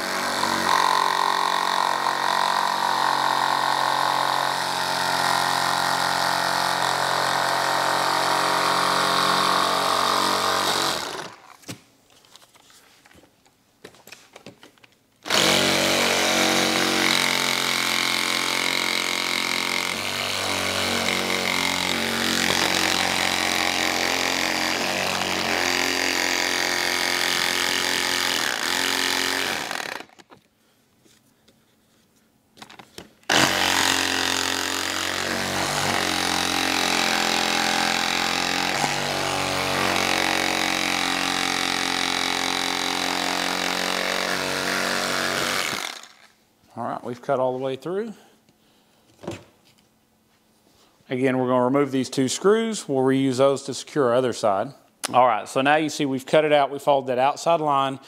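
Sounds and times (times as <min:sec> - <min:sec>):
cordless saw motor whine: 0:15.3 - 0:30.2, 0:33.3 - 0:46.2.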